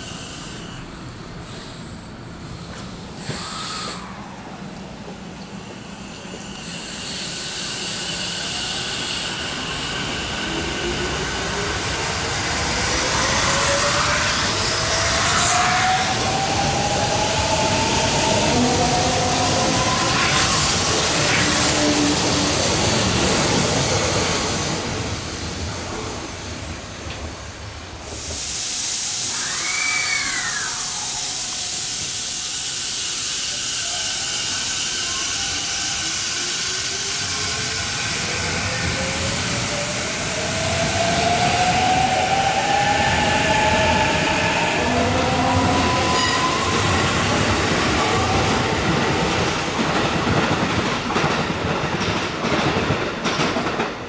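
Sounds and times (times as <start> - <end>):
wheels rumbling on rail: 30.2 - 54.0.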